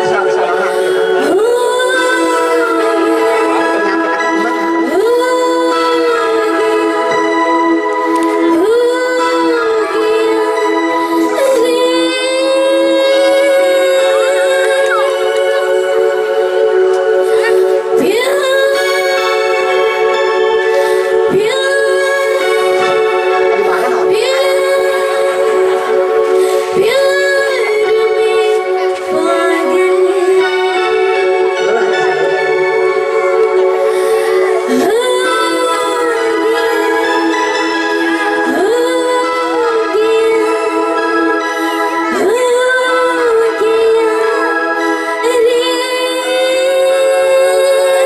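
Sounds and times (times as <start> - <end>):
steady held drone: 0.0 - 48.0
sustained musical accompaniment: 0.0 - 48.0
woman singing into a microphone: 0.0 - 48.0.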